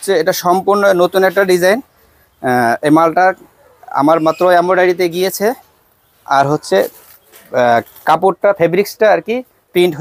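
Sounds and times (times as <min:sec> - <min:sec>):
man speaking loudly: 0:00.0 - 0:05.6, 0:07.6 - 0:10.0.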